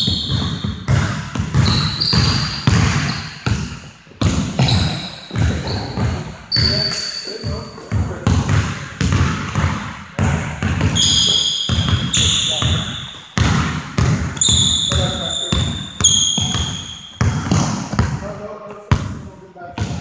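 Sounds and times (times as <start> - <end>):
sneakers squealing on wood: 0.0 - 9.7, 10.7 - 18.2
basketball bouncing on hardwood floor: 0.0 - 18.3, 18.9 - 20.0.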